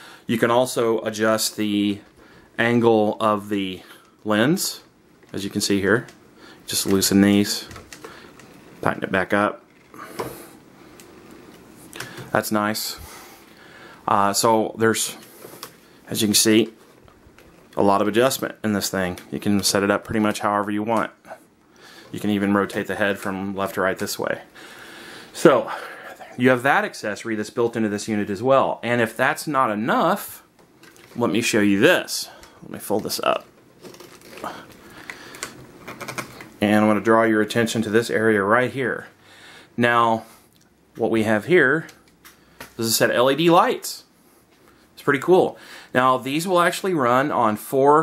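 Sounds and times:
low room hiss: 0.0 - 48.0.

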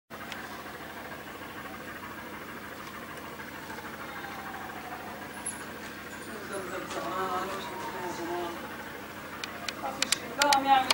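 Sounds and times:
distant engine humming: 0.1 - 10.9
faint falling tone: 2.9 - 9.7.

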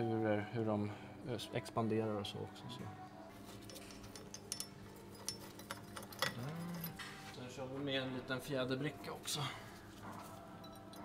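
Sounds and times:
metallic clicks and clinks: 3.6 - 7.0.

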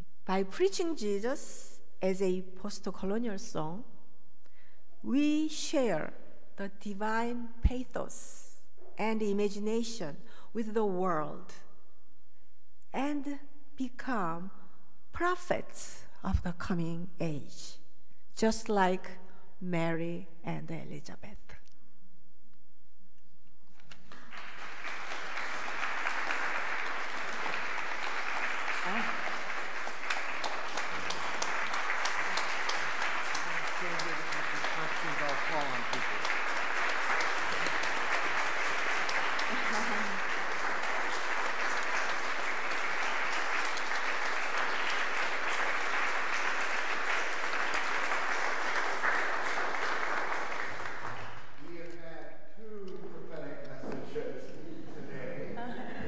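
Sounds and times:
audience applauding: 23.8 - 52.0.

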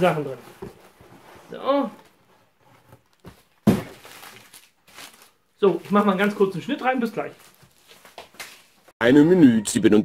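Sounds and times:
thump and plastic crinkle: 3.0 - 5.2.

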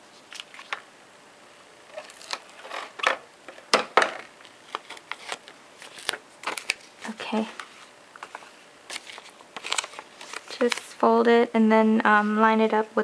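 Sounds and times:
paper being handled: 0.1 - 0.8, 4.4 - 11.0.

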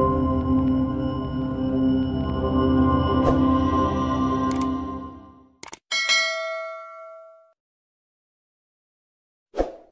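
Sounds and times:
notification bell ding: 5.9 - 7.6.

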